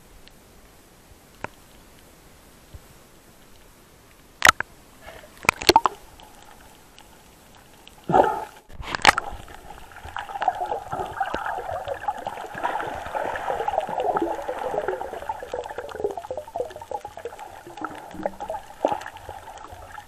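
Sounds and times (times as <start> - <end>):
underwater bubbling crackle: 2.7 - 20.0
sharp click: 4.4 - 4.7.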